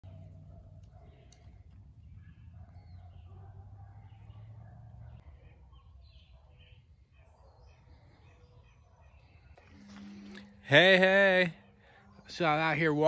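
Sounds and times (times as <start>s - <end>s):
faint bird chirps: 0.0s - 13.0s.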